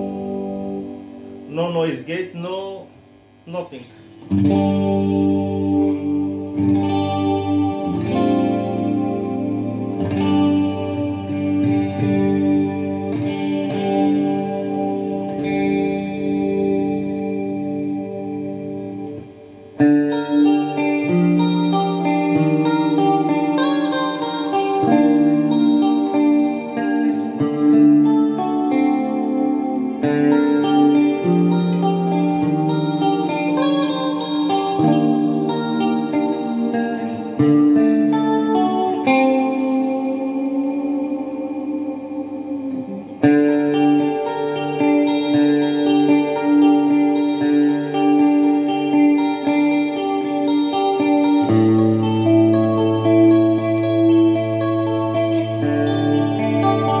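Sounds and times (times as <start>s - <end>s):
electric guitar chords and licks: 0.0s - 57.0s.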